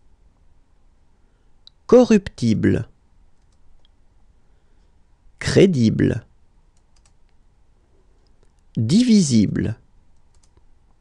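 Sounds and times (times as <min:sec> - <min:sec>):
computer mouse clicks: 0:03.3 - 0:04.0, 0:06.7 - 0:07.4, 0:10.1 - 0:10.7.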